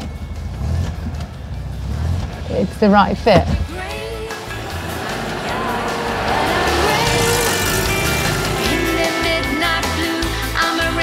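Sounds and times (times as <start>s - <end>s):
car engine running: 3.6s - 10.0s
background music: 3.6s - 11.0s.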